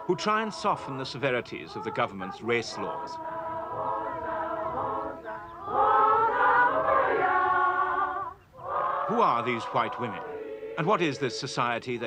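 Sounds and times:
women singing in unison: 1.6 - 11.3.

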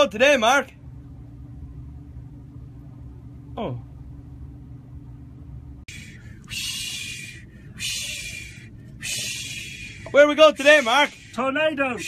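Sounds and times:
man making hissing shh sounds: 5.9 - 11.6.

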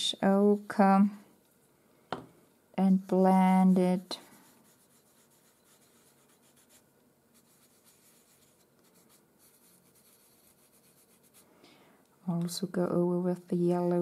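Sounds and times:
fingertips rubbing on paper: 3.5 - 11.4.

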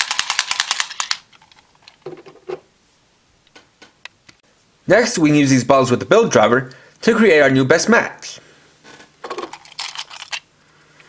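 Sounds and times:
plastic toy rattling: 0.0 - 2.1, 9.2 - 10.5.

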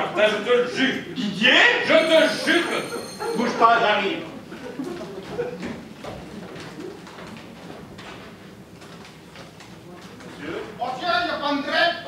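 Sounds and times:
faint low murmuring: 0.0 - 11.4.

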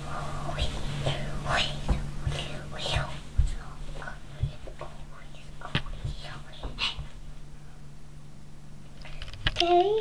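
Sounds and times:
child whispering: 0.0 - 7.1
steady low hum: 0.0 - 10.0.

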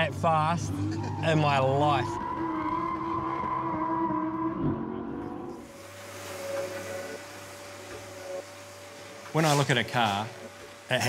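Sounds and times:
car engine: 0.0 - 11.0
steady hum: 4.9 - 11.0.

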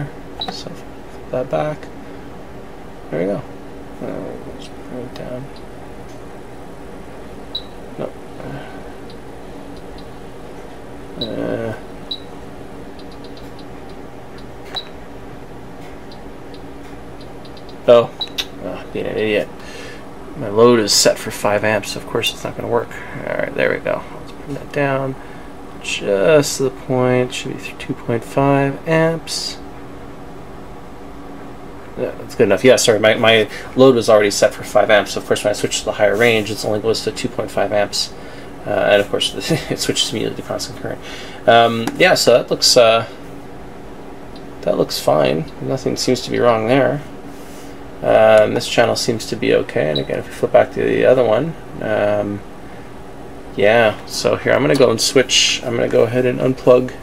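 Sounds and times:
cooling fans whirring: 0.0 - 57.0
electronics humming: 0.0 - 57.0.

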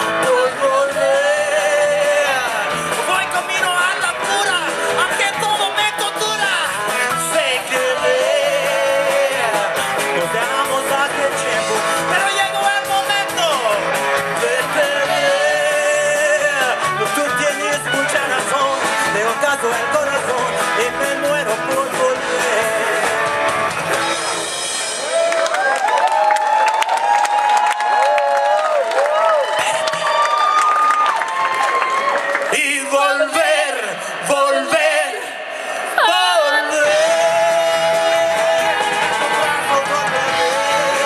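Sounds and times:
lead vocalist singing: 0.0 - 23.7, 32.4 - 41.0
bass guitar: 0.0 - 25.8, 36.0 - 41.0
drums: 0.0 - 41.0
electric guitars: 0.0 - 41.0.

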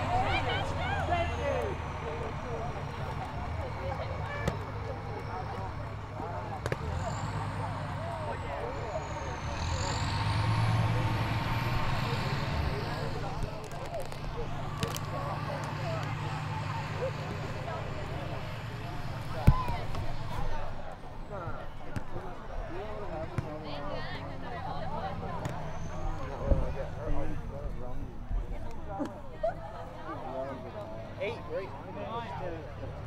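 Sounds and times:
chatter of voices: 0.0 - 33.0.

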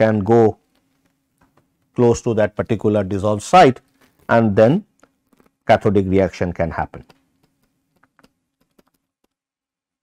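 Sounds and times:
stylus tapping on pen tablet: 7.0 - 9.4.

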